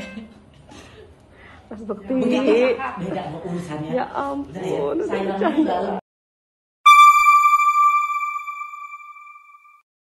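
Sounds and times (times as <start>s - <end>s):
electronic logo ping: 6.9s - 9.8s.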